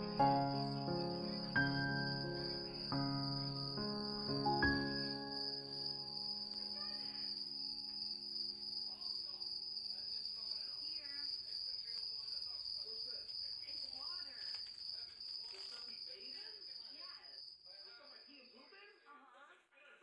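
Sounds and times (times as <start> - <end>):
held musical notes: 0.0 - 8.0
cricket trilling: 0.0 - 18.3.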